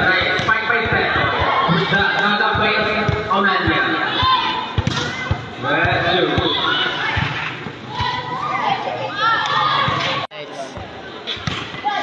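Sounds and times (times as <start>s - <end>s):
spectators' voices: 0.0s - 12.0s
volleyball thud: 4.1s - 8.3s.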